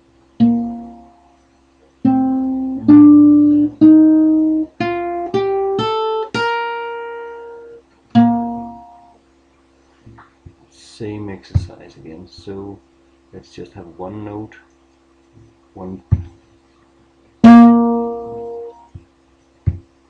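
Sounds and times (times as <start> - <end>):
guitar riff: 0.4 - 1.4, 2.0 - 9.2, 17.4 - 19.0.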